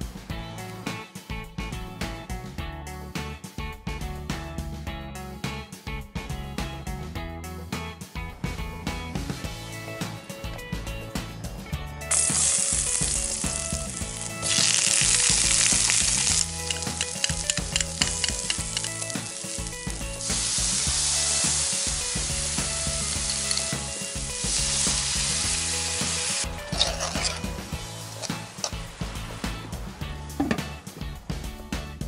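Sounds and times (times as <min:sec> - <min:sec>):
onions sizzling in hot oil: 0:12.1 - 0:29.5
utensil clicking against wok: 0:14.4 - 0:20.0, 0:28.2 - 0:28.8.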